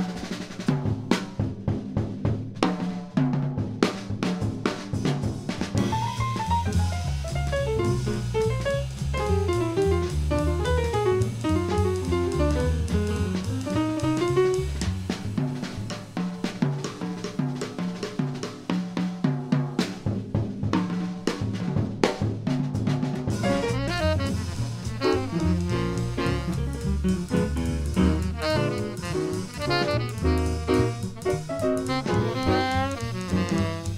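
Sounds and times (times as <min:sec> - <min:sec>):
drum kit: 0:00.0 - 0:33.9
double bass: 0:05.8 - 0:15.9, 0:23.3 - 0:33.9
acoustic piano: 0:05.8 - 0:18.4, 0:23.3 - 0:33.9
saxophone: 0:23.4 - 0:33.9.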